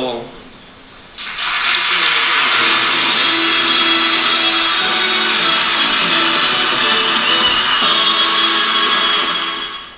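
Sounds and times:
audience applause: 1.2s - 9.9s.

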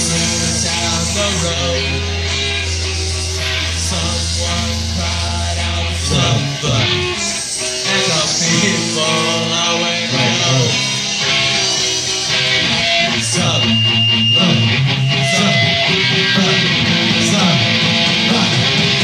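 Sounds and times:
bass guitar: 0.0s - 19.0s
drums: 0.0s - 19.0s
electric guitar: 0.0s - 19.0s.

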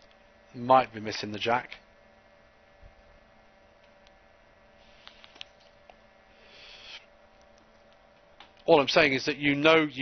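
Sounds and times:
faint steady hum: 0.0s - 10.0s
short soft hiss: 6.4s - 7.1s.

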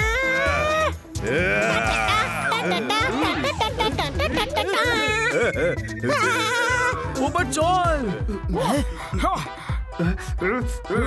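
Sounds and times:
background music: 0.0s - 11.0s
wavering yell: 0.4s - 3.4s
cartoon battle cry: 1.3s - 3.6s.

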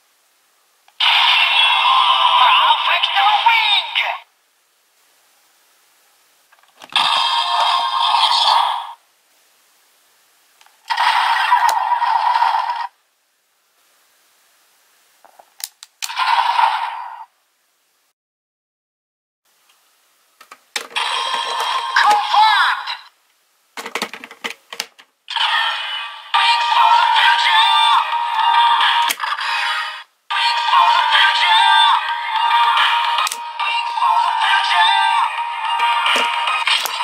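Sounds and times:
synthesized voice: 1.0s - 4.3s, 21.5s - 23.1s, 25.3s - 37.0s
electronic music from toy speaker: 6.9s - 9.0s, 21.0s - 22.9s, 25.3s - 37.0s
toy sound effect through speaker: 21.0s - 23.1s.

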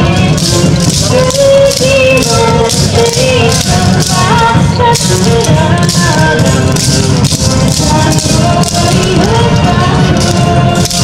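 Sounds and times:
dance music over steady beat: 0.0s - 11.0s
wooden clappers clacking: 0.0s - 11.0s.

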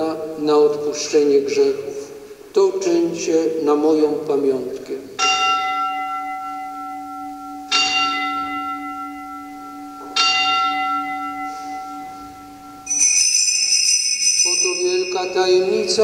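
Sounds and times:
altar bell ringing: 5.2s - 16.0s
small bells jingling: 5.2s - 16.0s.

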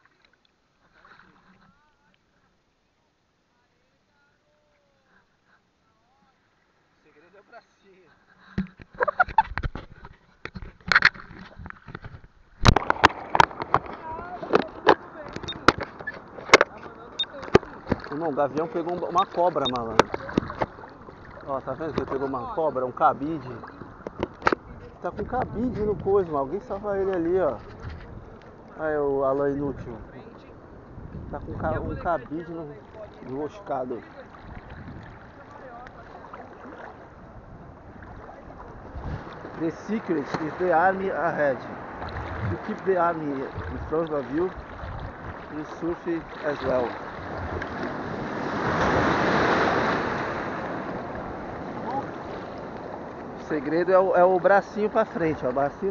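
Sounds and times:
sea water splashing: 0.0s - 2.6s, 4.4s - 55.9s
wind rumbling on microphone: 23.5s - 33.5s, 34.2s - 40.7s, 41.5s - 53.5s.

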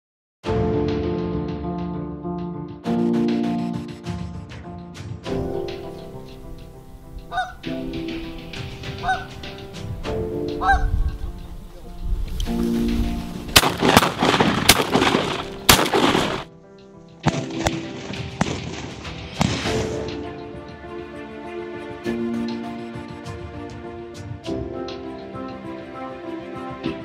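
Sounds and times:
background music: 0.4s - 27.0s
geese honking: 7.3s - 7.7s, 9.0s - 9.4s, 10.6s - 10.9s
sharp bangs: 13.5s - 16.5s.

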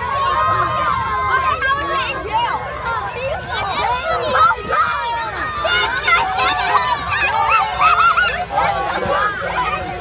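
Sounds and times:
children cheering and shrieking: 0.0s - 10.0s.

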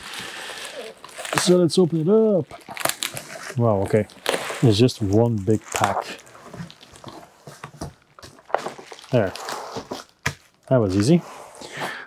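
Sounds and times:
cardboard box and bubble wrap rustling: 0.0s - 11.6s.

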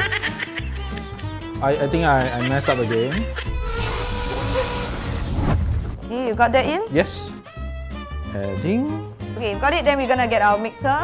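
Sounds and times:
background music: 0.0s - 11.0s
hissing whoosh: 3.5s - 6.0s.

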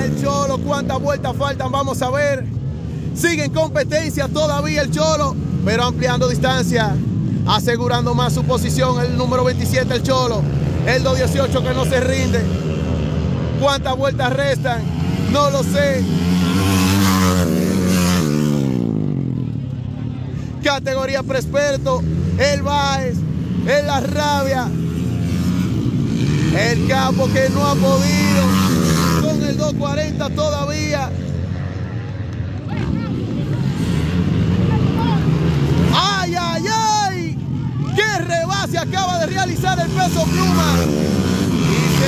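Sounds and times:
man calling out: 0.0s - 12.5s, 20.6s - 24.8s, 26.5s - 31.2s, 34.6s - 41.0s
dirt bike passing at speed: 8.2s - 19.5s, 21.5s - 42.0s.

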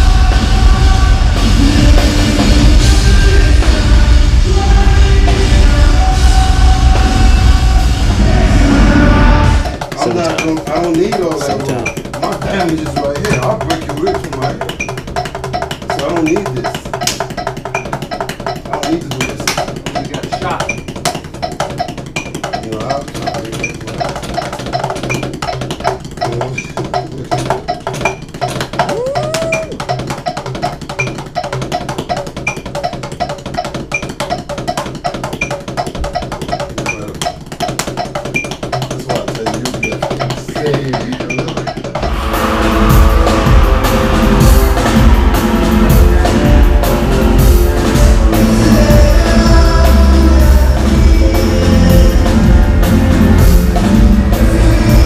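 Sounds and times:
background music: 0.0s - 55.0s
rapid drumming on drum kit: 0.0s - 55.0s.

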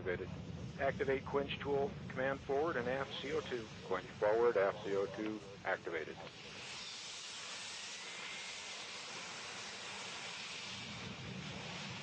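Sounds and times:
hiss of gas blowing: 0.1s - 12.0s.

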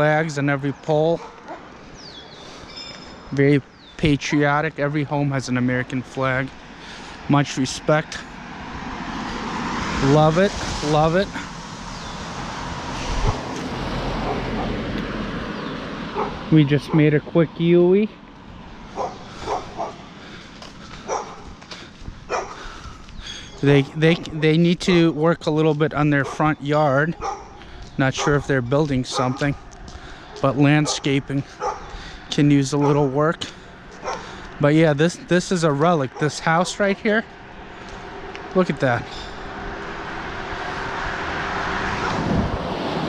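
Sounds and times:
outdoor background noise: 0.0s - 43.0s.

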